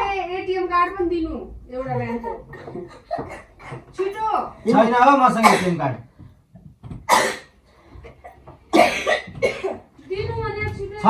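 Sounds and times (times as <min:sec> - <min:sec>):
person coughing: 0:05.4 - 0:05.9, 0:07.1 - 0:07.5, 0:08.7 - 0:09.9.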